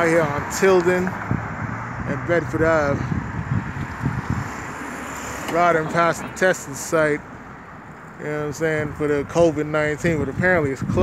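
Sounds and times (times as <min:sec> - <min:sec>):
wind buffeting microphone: 0:00.0 - 0:06.8, 0:08.4 - 0:11.0
faint city traffic: 0:00.0 - 0:11.0.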